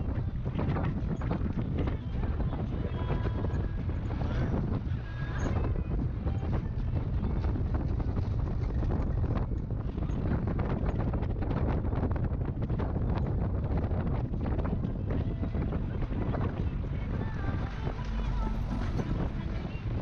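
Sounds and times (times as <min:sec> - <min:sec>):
van road rumble: 0:00.0 - 0:20.0
wind buffeting microphone: 0:00.0 - 0:20.0.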